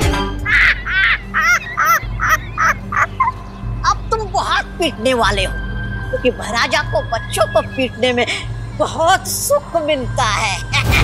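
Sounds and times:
low music drone: 0.0s - 11.0s.

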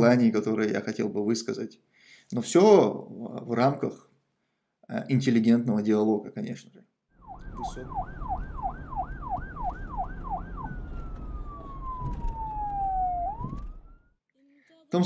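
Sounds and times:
siren whooping: 7.2s - 14.2s.

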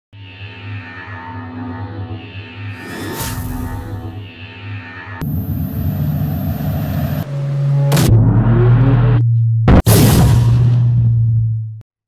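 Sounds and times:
loud low rumble: 0.1s - 11.8s
sharp hit: 0.4s - 8.5s, 9.7s - 11.2s.

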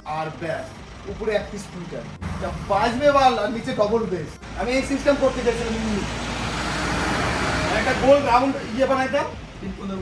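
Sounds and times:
road vehicle passing: 0.2s - 10.0s.

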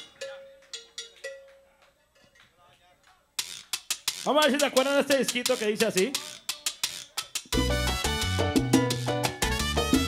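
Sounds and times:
percussion strikes with bell ring: 0.0s - 2.4s.

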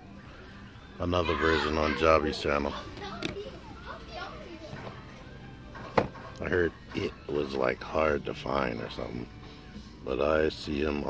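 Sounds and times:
faint children's voices: 0.0s - 9.3s.

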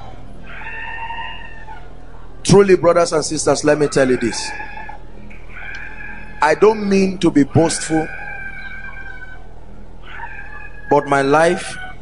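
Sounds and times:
steady low hum: 1.6s - 12.0s
preacher speaking: 2.4s - 4.7s, 6.4s - 8.2s, 10.9s - 11.8s.

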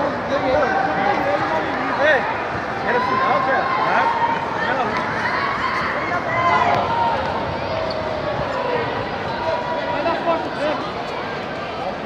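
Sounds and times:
crowd shouting and talking: 0.0s - 12.0s.

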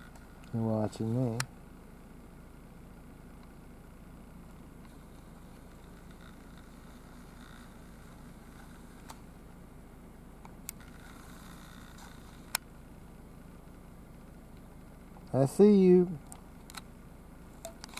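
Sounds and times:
camera handling clicks: 16.3s - 16.9s, 17.6s - 17.9s.

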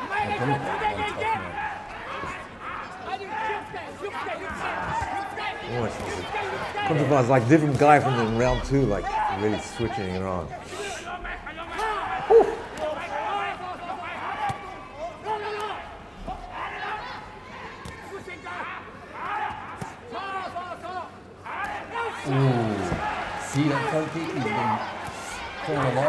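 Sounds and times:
people shouting: 0.0s - 26.0s.

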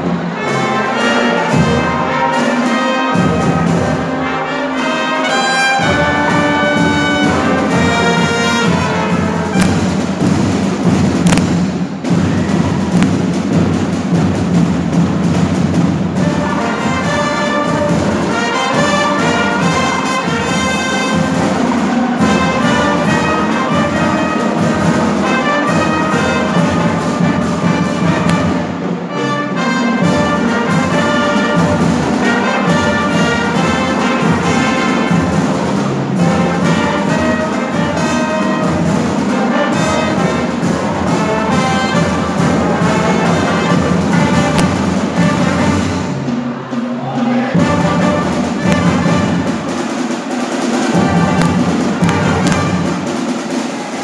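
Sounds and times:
marching brass band playing: 0.0s - 54.0s.

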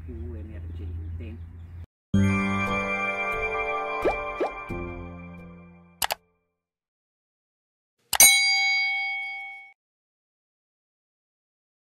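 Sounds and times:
click sound effect: 6.0s - 6.3s
bright bell ding: 8.2s - 9.8s.

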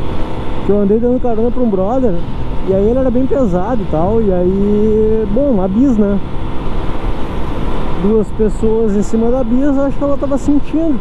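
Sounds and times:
wind and road noise: 0.0s - 11.0s.

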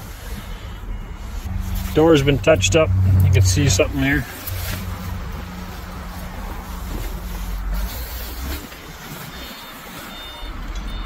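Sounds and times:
vehicle engine rumbling: 0.0s - 11.0s
faint high beeps: 9.4s - 11.0s.

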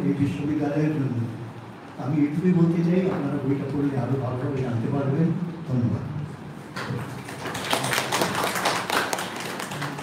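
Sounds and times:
small group clapping: 7.1s - 10.0s.

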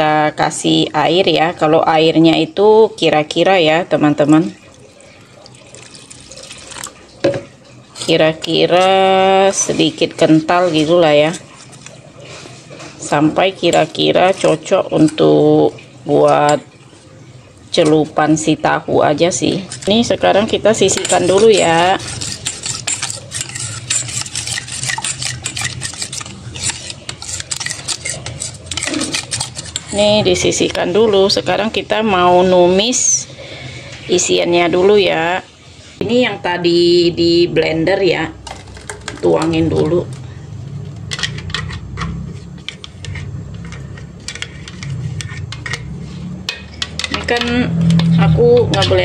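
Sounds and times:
metal spoon stirring batter: 4.4s - 17.0s, 17.7s - 32.9s, 41.0s - 49.0s
water pouring into flour: 4.5s - 7.2s.

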